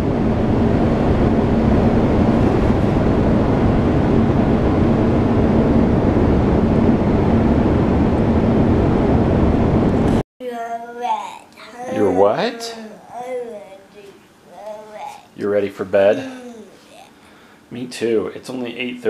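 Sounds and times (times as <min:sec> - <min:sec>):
faint steady hum: 0:00.0 - 0:19.0.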